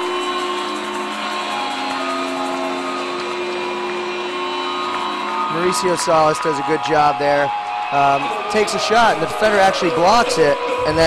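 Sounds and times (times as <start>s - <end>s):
crowd noise: 0.0s - 11.0s
music over arena speakers: 0.0s - 11.0s.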